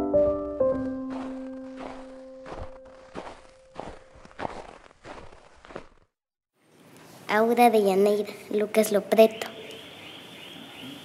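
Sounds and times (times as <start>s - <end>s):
slow footsteps: 0.8s - 6.2s.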